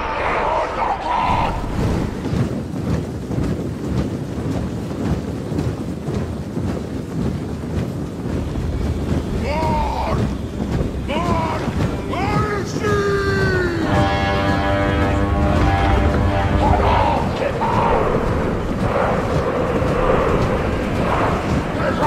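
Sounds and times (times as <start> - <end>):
army marching rumble: 1.2 - 22.0
loud falling calls: 9.3 - 22.0.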